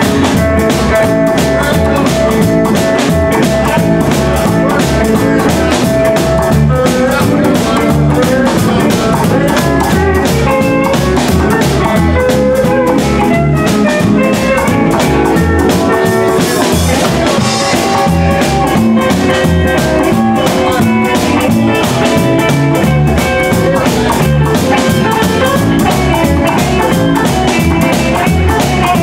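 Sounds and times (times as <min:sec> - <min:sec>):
drum kit: 0:00.0 - 0:29.0
electric guitar lead: 0:00.0 - 0:29.0
upright bass walking: 0:00.0 - 0:29.0.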